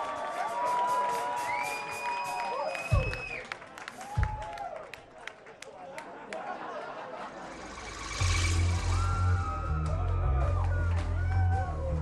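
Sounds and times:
concert crowd noise: 0.0s - 12.0s
hissing synth swell: 7.3s - 9.8s
synthesizer bass line: 7.3s - 11.3s.

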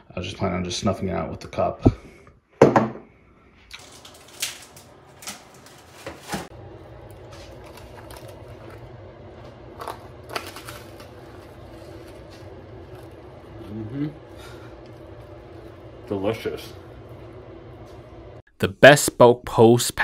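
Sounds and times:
low steady hum: 3.3s - 19.4s
crunchy cracker clicks: 3.7s - 5.9s, 7.0s - 8.8s, 9.7s - 13.1s
person chewing: 9.6s - 15.9s.

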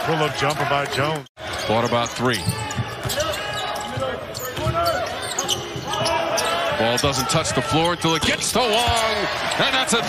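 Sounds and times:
voices on court and in stands: 0.0s - 10.0s.

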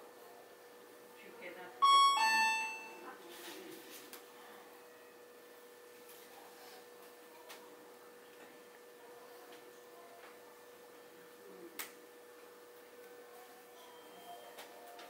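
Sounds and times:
faint steady hum: 0.2s - 3.2s
electronic two-tone chime: 1.8s - 3.0s.

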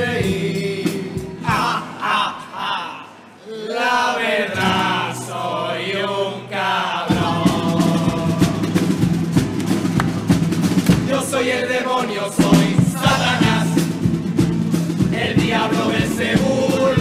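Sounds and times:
drums beating: 0.0s - 2.3s, 7.1s - 17.0s
male chorus singing in harmony: 0.0s - 9.2s, 10.9s - 17.0s
guitar accompaniment: 7.1s - 11.3s, 12.4s - 17.0s.

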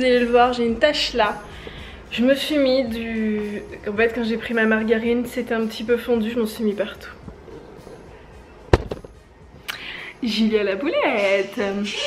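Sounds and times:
sharp knock: 8.7s - 9.2s.

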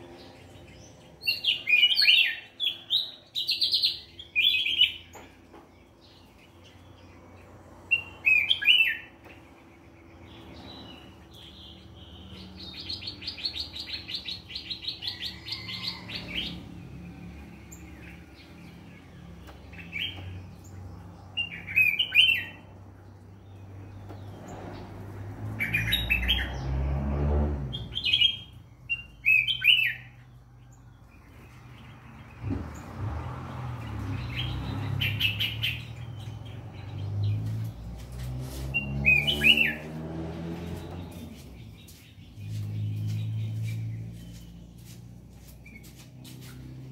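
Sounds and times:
songbird singing: 0.0s - 46.9s.

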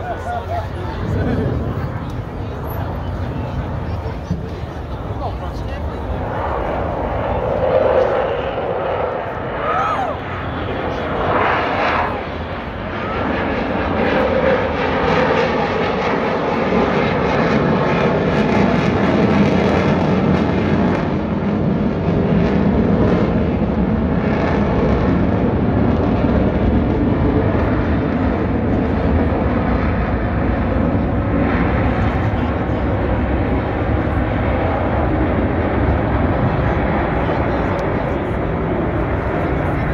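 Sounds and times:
jet engine roar: 0.0s - 39.9s.

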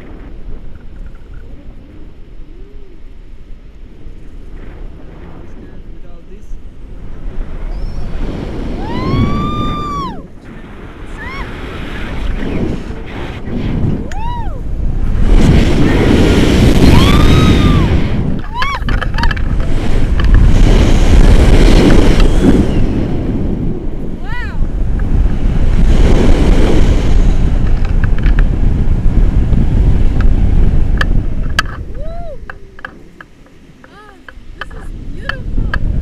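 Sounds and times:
wind buffeting microphone: 0.0s - 36.0s
high-pitched whoops: 8.8s - 10.3s, 11.1s - 11.6s, 14.0s - 14.6s, 16.8s - 18.9s, 31.9s - 32.6s.

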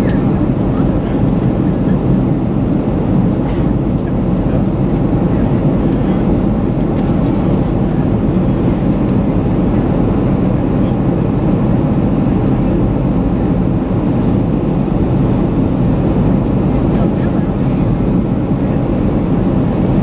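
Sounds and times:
jet engine and rushing airflow: 0.0s - 20.0s.

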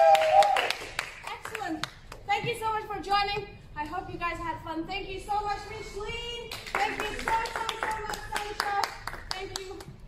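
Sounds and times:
group clapping quickly: 0.0s - 2.3s, 6.5s - 10.0s.

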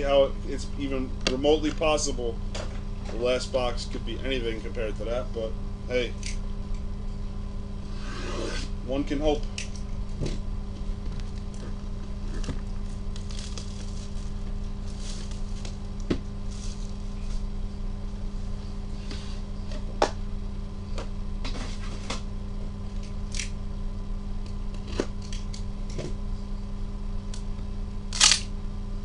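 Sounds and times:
low electrical hum: 0.0s - 29.0s
plastic shrink-wrap tearing and crinkling: 13.1s - 15.7s.

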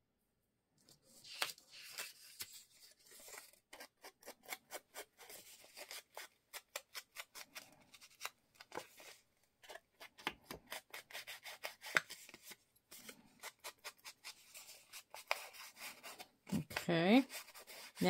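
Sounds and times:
foam tool scratching on paper: 13.4s - 18.0s.

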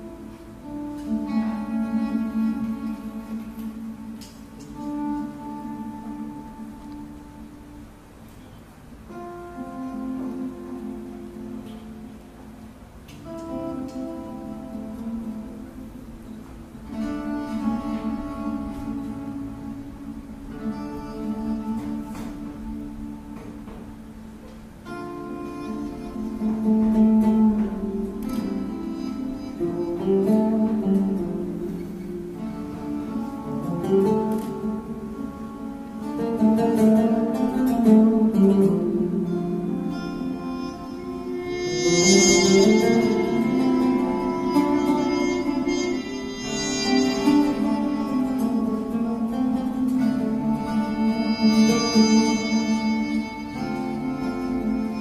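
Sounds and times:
acoustic string instruments playing: 0.0s - 55.0s.

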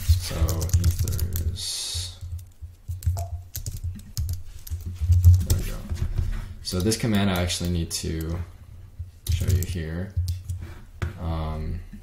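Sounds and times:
typing on keyboard: 0.1s - 5.7s, 6.7s - 8.4s, 9.2s - 10.6s.

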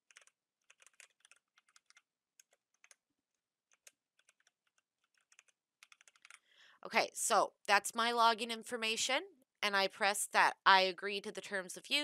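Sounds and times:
computer keyboard typing: 0.0s - 6.5s.

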